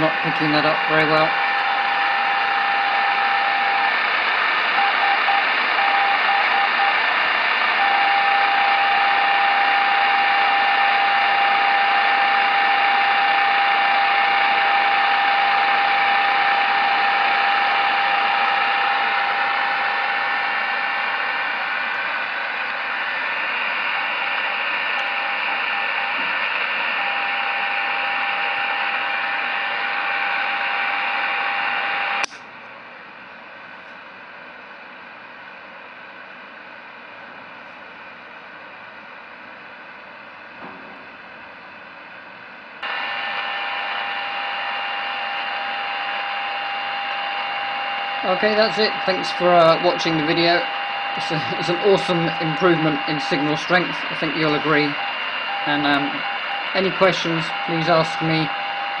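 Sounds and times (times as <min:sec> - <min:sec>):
radio static hiss: 0:00.0 - 0:32.3, 0:42.8 - 0:59.0
steady radio beacon tone: 0:00.0 - 0:32.3, 0:42.8 - 0:59.0
morse code tones: 0:04.7 - 0:07.0, 0:42.8 - 0:59.0.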